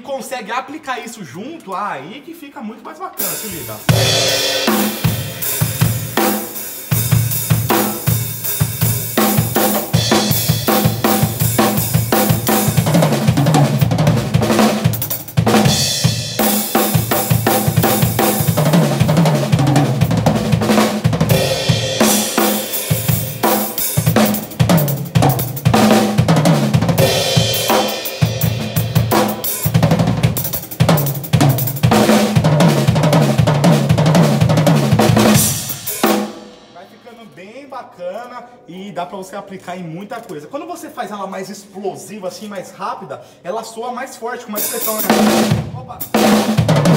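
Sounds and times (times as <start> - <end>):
hi-hat and cymbal hits: 3.2 - 12.9, 21.3 - 26.2, 27.0 - 32.1, 35.1 - 37.3, 44.6 - 45.2.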